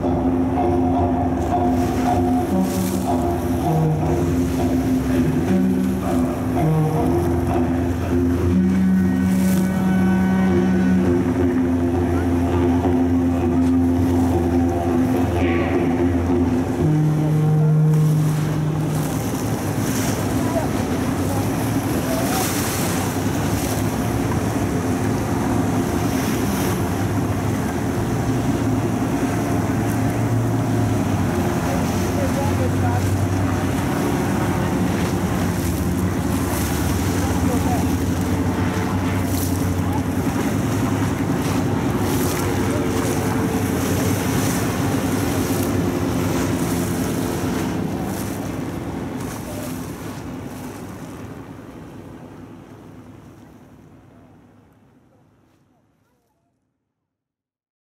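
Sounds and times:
low steady tone: 0.0 - 50.2
water wash: 0.0 - 55.7
motorboat engines running: 0.0 - 57.0.

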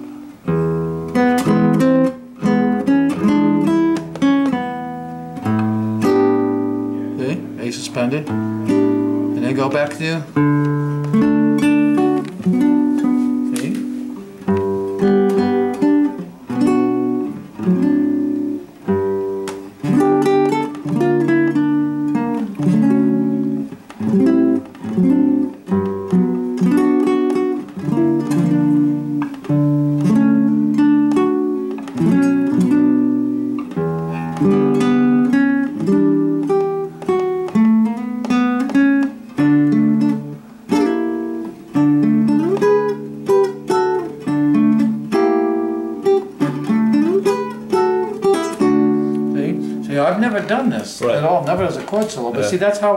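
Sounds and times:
classical guitar playing: 0.0 - 52.9.

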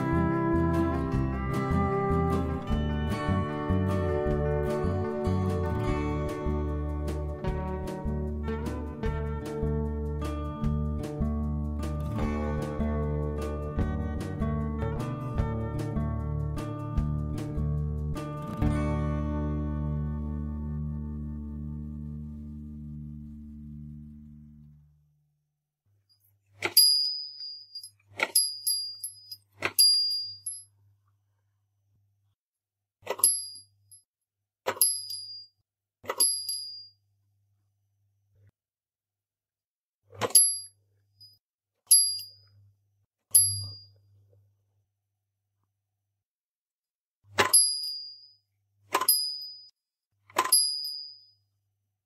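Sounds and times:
small bell ding: 26.7 - 30.7, 34.8 - 35.5, 36.2 - 37.0, 43.4 - 43.9, 47.4 - 48.4, 49.0 - 49.7, 50.4 - 51.4
wooden mechanism clack: 50.3 - 51.0.

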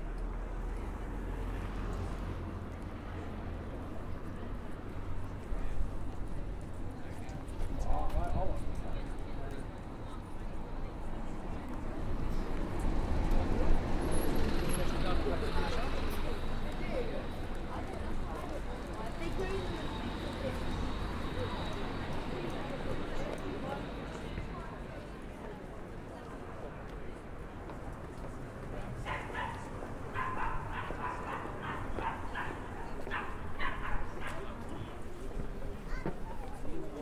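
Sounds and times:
chatter of passers-by: 0.0 - 37.0
road traffic rumble: 0.0 - 37.0
street background noise: 0.0 - 37.0.

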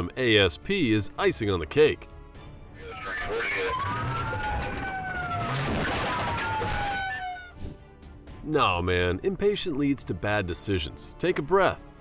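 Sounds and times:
police siren wailing: 2.7 - 7.6
rushing noise of moving car: 3.7 - 7.6.

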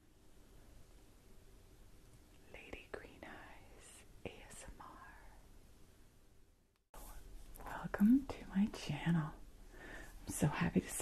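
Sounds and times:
woman whispering: 2.4 - 5.4, 7.0 - 9.4, 10.3 - 11.0.

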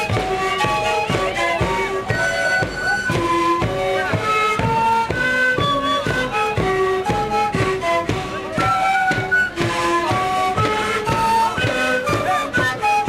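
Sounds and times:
panpipes playing melody: 0.0 - 13.0.

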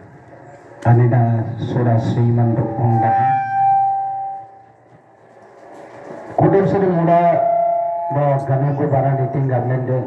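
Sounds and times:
microphone feedback tone: 2.6 - 4.9, 7.2 - 10.0.

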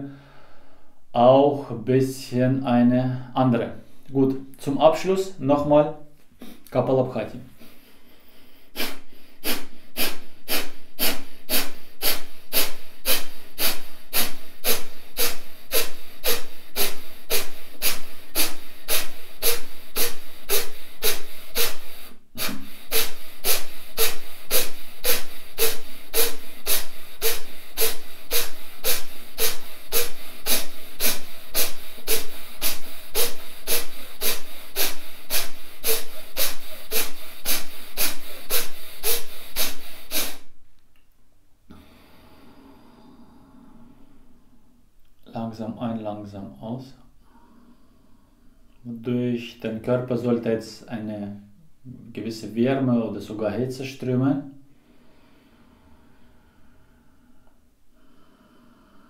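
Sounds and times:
man exhaling forcefully through nose: 7.6 - 40.6.

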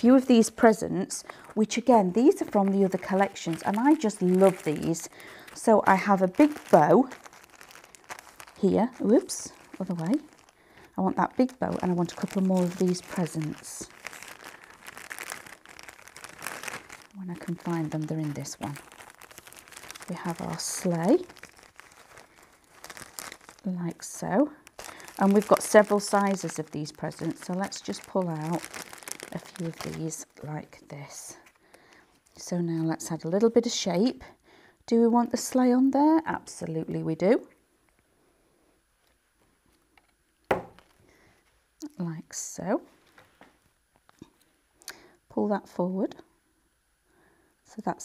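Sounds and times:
cellophane bag crinkling: 0.0 - 33.4, 40.5 - 41.1
paper handling: 2.4 - 23.7
sharp tap on surface: 40.5 - 40.8.

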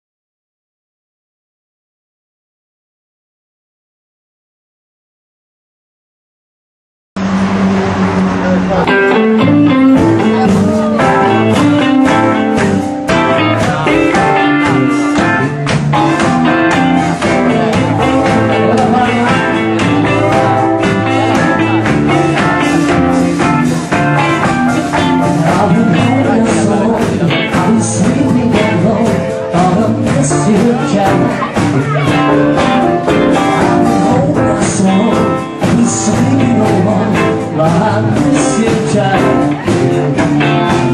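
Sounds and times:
live band with electric guitars: 7.2 - 40.9.

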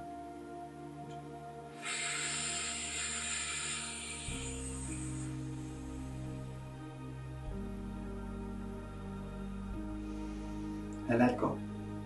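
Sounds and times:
soft ambient music: 0.0 - 12.0
long breath: 1.7 - 6.3, 9.8 - 11.0.

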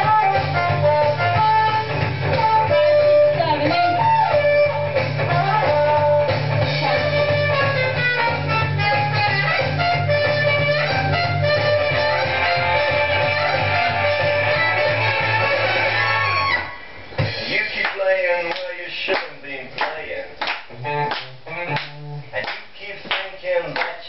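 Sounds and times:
plucked guitar notes: 0.0 - 16.5
band music with bass line: 0.0 - 18.5, 20.6 - 22.4.

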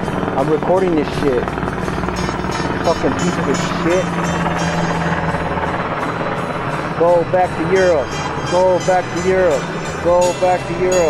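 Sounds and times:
helicopter engine and rotor drone: 0.0 - 11.0.

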